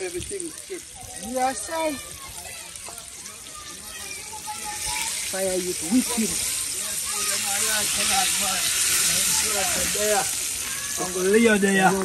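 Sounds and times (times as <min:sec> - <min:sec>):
chicken sizzling in hot oil: 0:00.0 - 0:12.0.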